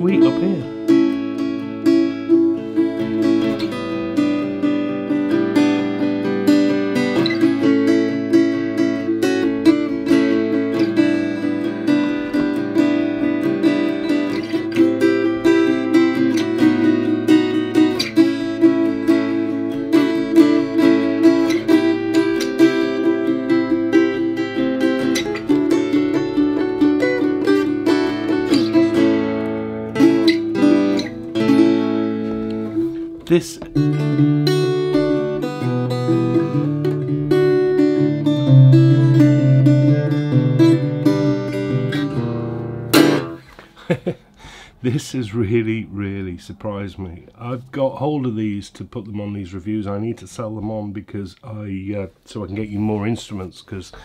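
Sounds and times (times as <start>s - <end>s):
fingerstyle acoustic guitar: 0.0s - 48.0s.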